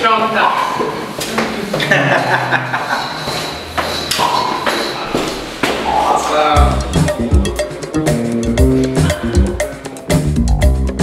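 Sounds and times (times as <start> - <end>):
person laughing: 1.8 - 3.2.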